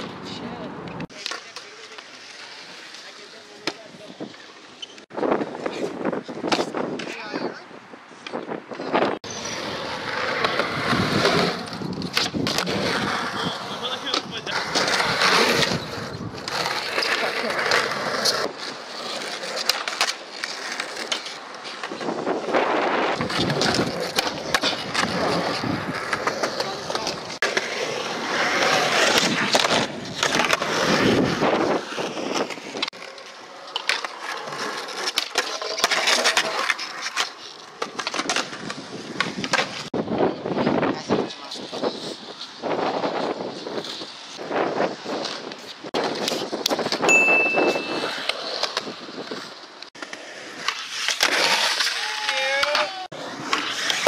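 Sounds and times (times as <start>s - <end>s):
skateboard clacking on ground: 0.0s - 7.4s, 8.2s - 40.4s, 41.1s - 54.0s
skateboard wheels rolling on concrete: 0.0s - 54.0s.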